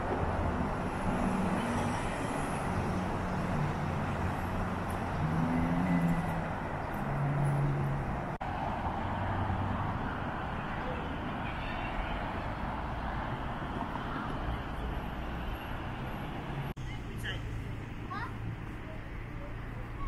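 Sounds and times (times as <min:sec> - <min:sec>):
road traffic passing: 0:00.0 - 0:20.0.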